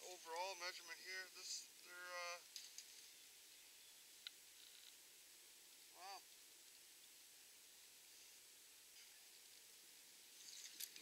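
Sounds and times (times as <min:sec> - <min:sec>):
faint clicks and rustles: 0:00.0 - 0:05.0, 0:06.3 - 0:11.0
faint hiss: 0:00.0 - 0:11.0.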